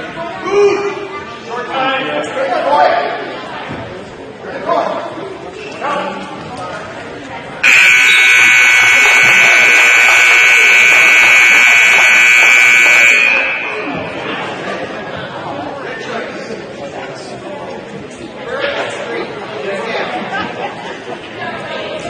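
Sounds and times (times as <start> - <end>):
crowd voices: 0.0 - 22.0
scoreboard buzzer blast: 7.6 - 14.2.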